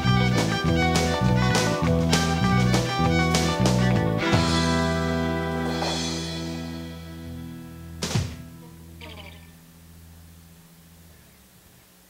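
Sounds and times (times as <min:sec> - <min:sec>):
band chord on guitar and bass: 0:00.0 - 0:11.2
sharp loud thump: 0:08.0 - 0:08.5.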